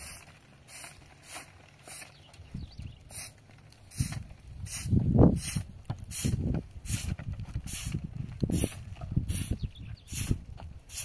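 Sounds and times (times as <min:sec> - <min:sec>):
brush swishing on roof: 0:00.0 - 0:02.2, 0:03.1 - 0:11.0.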